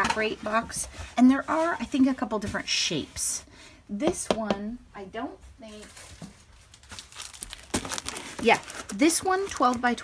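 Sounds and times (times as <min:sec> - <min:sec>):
plastic sleeve crinkling: 0:05.7 - 0:10.0.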